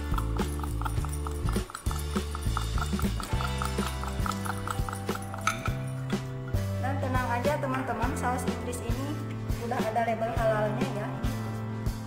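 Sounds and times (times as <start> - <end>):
quick even knocking beat: 0.0 - 5.6
background music with bass line: 0.0 - 12.0.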